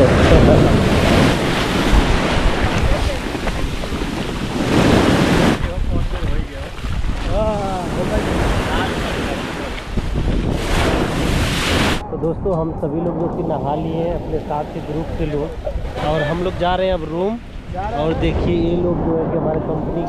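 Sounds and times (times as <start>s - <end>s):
surf washing up sand: 0.0s - 12.0s
wind on microphone: 0.0s - 20.0s.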